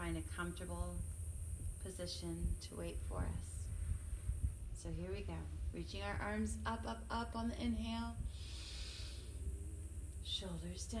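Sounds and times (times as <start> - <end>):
wind rumble on microphone: 0.0 - 11.0
woman inhaling deeply: 8.3 - 9.4.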